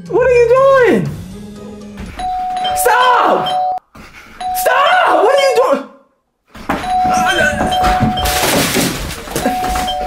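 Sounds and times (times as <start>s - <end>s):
doorbell chime ringing: 2.2s - 3.8s, 6.8s - 8.6s, 9.4s - 10.0s.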